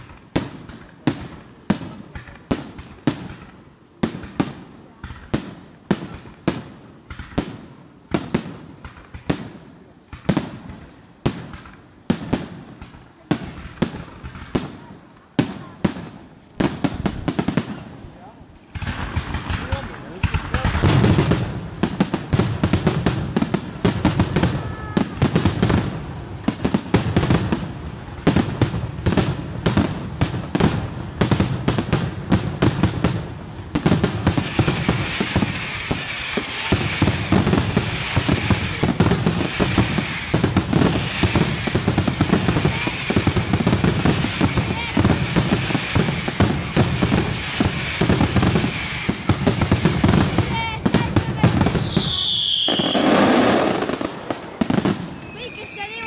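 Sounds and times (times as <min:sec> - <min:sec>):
crackling firework stars: 0:00.0 - 0:56.0
firework whistle: 0:51.3 - 0:54.0, 0:55.0 - 0:56.0.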